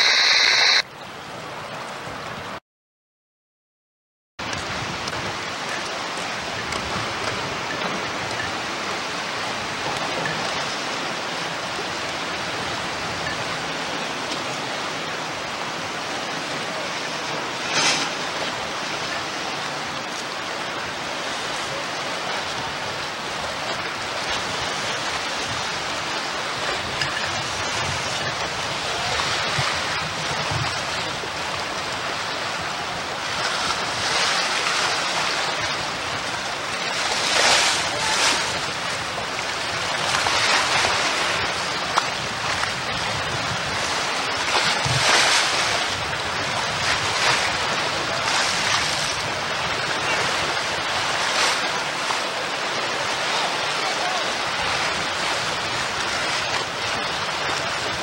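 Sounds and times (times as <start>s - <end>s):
choppy lake water: 0.0s - 2.6s, 4.4s - 58.0s.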